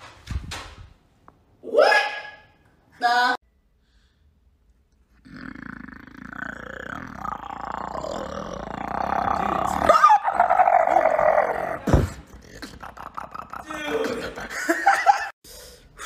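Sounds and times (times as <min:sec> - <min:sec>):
man growling: 0:05.2 - 0:14.6.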